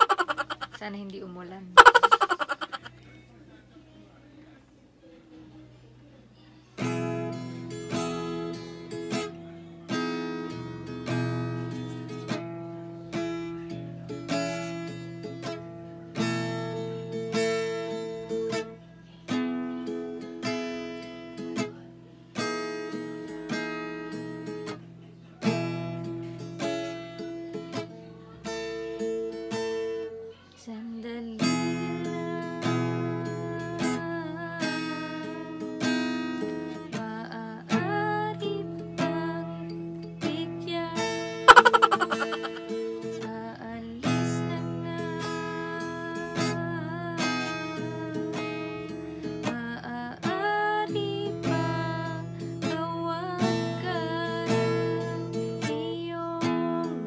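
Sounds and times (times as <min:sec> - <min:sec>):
woman singing: 0:30.6 - 0:35.7, 0:36.7 - 0:48.7, 0:49.4 - 0:57.0
acoustic guitar strumming chords: 0:31.4 - 0:43.3.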